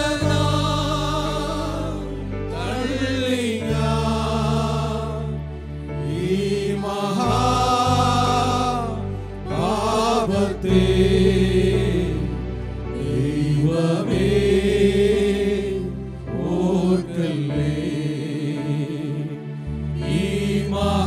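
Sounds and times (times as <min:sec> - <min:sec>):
keyboard: 0:00.0 - 0:21.0
men's choir singing a hymn: 0:00.0 - 0:21.0.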